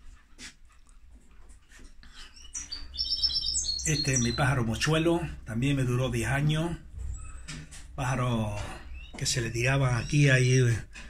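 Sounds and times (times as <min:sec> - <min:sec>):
faint room noise: 0:00.0 - 0:11.0
small bird chirping: 0:02.0 - 0:05.0, 0:08.8 - 0:10.6.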